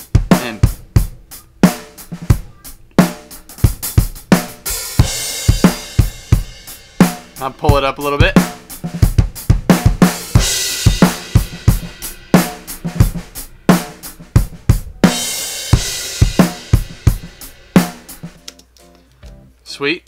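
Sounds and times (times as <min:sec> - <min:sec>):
drum kit groove: 0:00.0 - 0:19.6.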